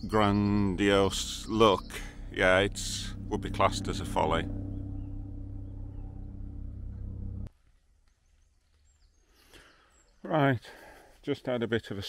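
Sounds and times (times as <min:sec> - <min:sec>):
low mechanical hum: 0:00.0 - 0:07.5
woodland ambience: 0:00.0 - 0:12.0.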